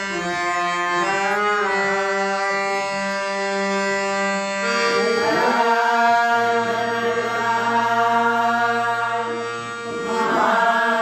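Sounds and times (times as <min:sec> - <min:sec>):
harmonium: 0:00.0 - 0:11.0
voices singing devotional song: 0:04.7 - 0:11.0.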